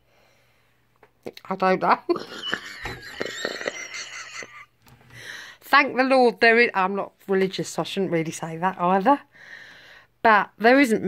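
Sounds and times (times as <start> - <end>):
woman laughing under her breath: 2.2 - 4.7.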